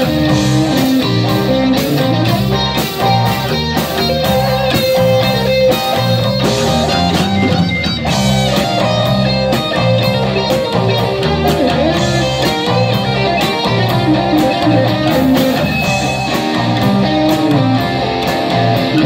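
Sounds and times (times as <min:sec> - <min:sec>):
bass: 0:00.0 - 0:19.0
electric guitars: 0:00.0 - 0:19.0
keyboard: 0:00.0 - 0:19.0
steady drum beat: 0:00.0 - 0:19.0.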